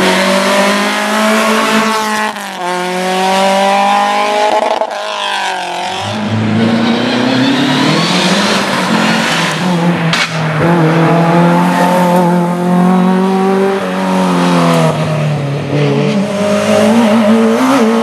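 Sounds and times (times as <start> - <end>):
rally car engine revving: 0.0 - 18.0.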